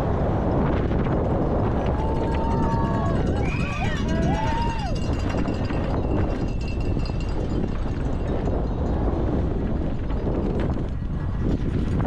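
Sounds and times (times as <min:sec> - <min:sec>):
wind rushing over camera: 0:00.0 - 0:12.0
spectators shouting: 0:01.8 - 0:05.2
mountain bike rattling: 0:02.2 - 0:12.0.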